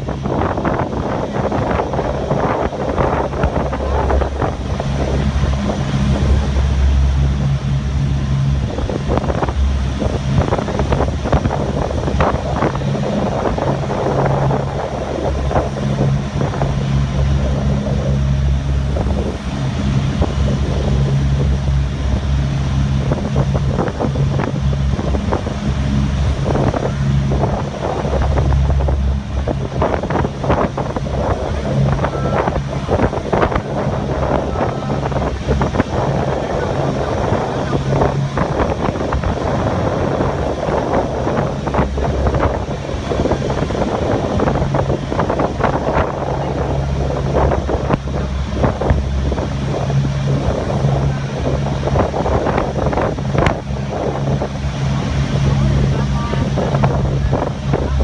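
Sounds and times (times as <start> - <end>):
ferry engines droning: 0.0 - 58.0
water rushing along hull: 0.0 - 58.0
wind buffeting microphone: 0.0 - 58.0.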